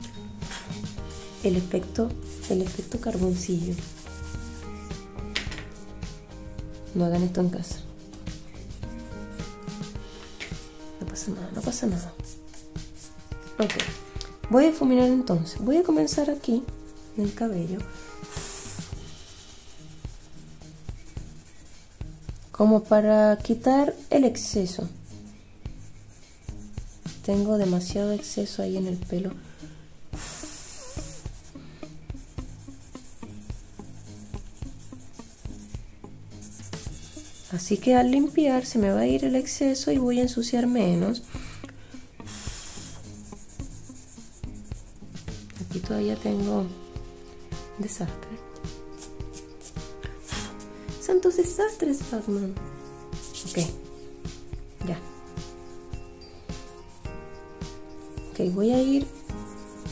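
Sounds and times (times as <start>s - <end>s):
soft background music: 0.0s - 59.9s
blending stump rubbing on paper: 0.5s - 5.0s, 15.9s - 22.7s, 30.2s - 31.5s, 36.4s - 39.4s, 42.3s - 46.9s, 49.0s - 55.9s, 58.0s - 59.9s.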